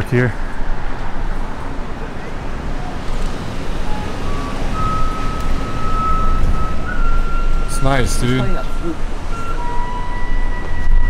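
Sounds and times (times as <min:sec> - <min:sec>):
city traffic rumble: 0:00.0 - 0:11.0
high-pitched tones: 0:02.0 - 0:11.0.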